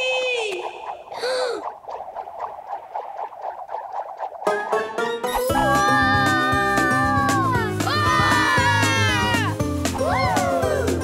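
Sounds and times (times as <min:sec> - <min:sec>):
cartoon bubbling blips: 0:00.0 - 0:06.2
cartoon character shouting whee: 0:05.5 - 0:09.5.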